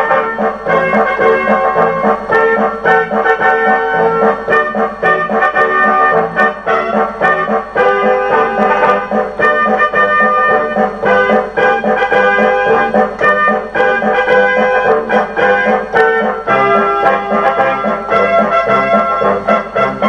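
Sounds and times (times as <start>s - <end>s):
brass band playing a march: 0.0s - 20.0s
march drum beat: 0.0s - 20.0s
trombones: 0.0s - 20.0s
trumpets: 0.0s - 20.0s.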